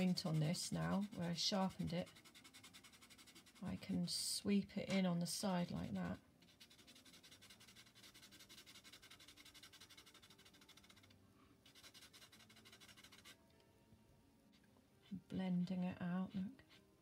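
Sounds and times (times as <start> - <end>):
charcoal pencil scratching paper: 0.0 - 13.4, 16.2 - 17.0.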